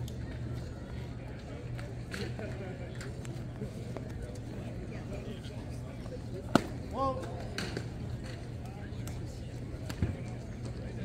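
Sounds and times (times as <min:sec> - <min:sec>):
faint background chatter: 0:00.0 - 0:11.0
baseball smacking into mitt: 0:06.5 - 0:06.8.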